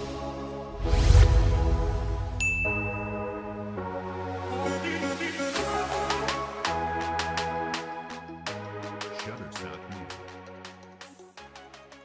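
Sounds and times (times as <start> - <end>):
electronic background music: 0.0 - 12.0
notification bell ding: 2.4 - 3.6.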